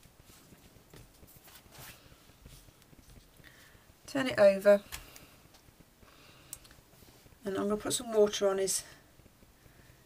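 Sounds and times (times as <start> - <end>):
soft taps and rustles of hands: 0.0 - 3.8.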